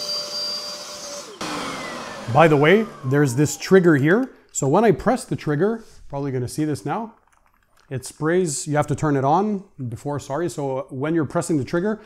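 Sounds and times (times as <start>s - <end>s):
carpet cleaner motor whining: 0.0s - 4.4s.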